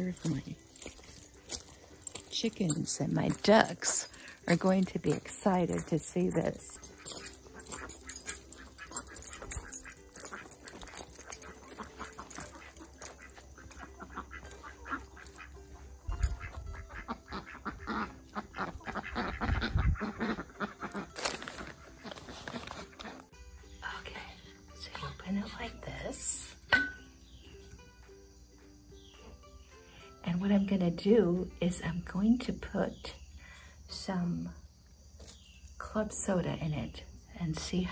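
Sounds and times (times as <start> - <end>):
ducks quacking: 11.6 - 23.3.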